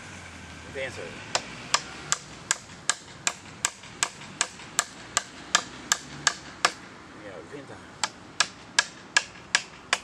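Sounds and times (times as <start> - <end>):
hammer striking chisel into wood: 1.3 - 6.9, 8.0 - 10.0.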